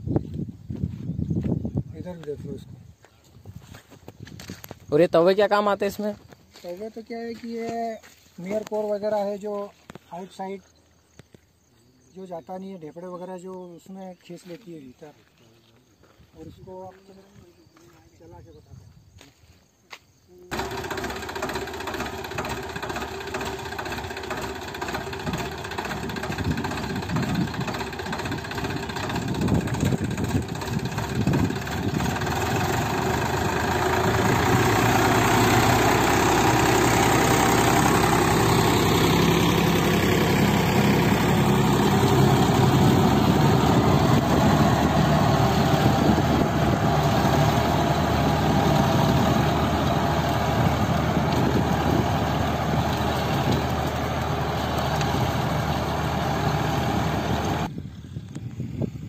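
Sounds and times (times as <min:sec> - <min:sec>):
tractor diesel engine under load: 0:20.5 - 0:57.7.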